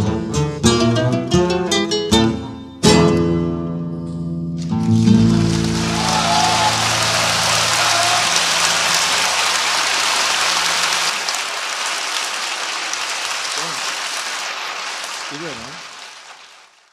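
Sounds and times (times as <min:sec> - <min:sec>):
audience applauding: 0:04.7 - 0:16.9.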